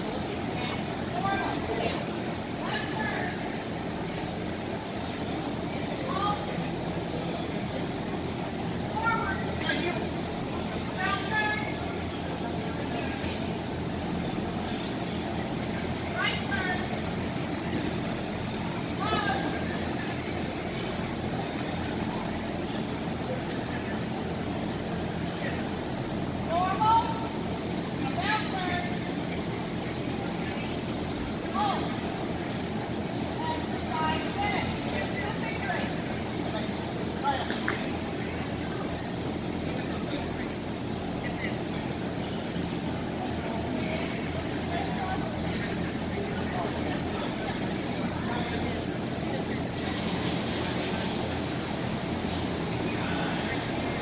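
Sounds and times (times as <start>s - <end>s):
murmur of people: 0.0s - 54.0s.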